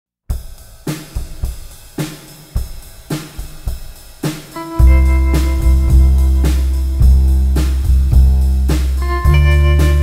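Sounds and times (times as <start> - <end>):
drum and cymbal beat: 0.3 - 10.0.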